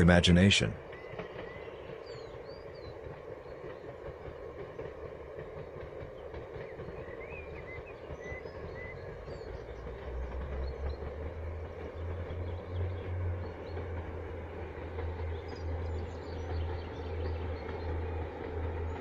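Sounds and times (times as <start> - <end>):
distant train rumbling: 0.0 - 19.0.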